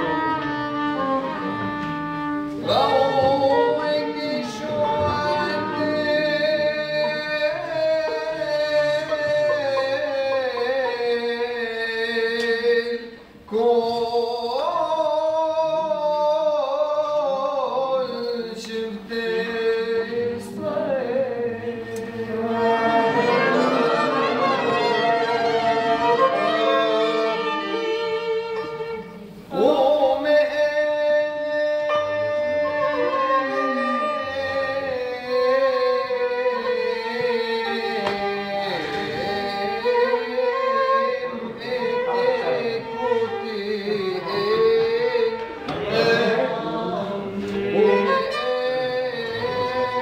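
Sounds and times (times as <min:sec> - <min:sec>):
violin playing a melody: 0:00.0 - 0:09.7, 0:20.2 - 0:29.6, 0:31.8 - 0:50.0
men singing: 0:02.6 - 0:50.0.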